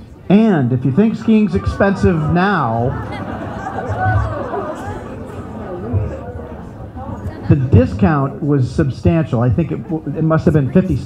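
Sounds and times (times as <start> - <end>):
murmur of chatter: 0.0 - 11.0.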